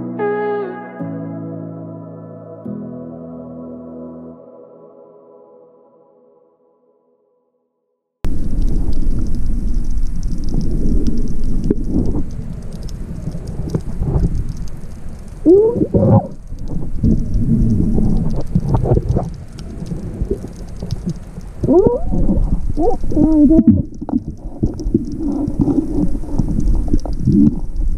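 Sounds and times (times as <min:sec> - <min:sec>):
faint crackling: 0:08.2 - 0:27.9
underwater rumble of water and bubbles: 0:08.2 - 0:27.9.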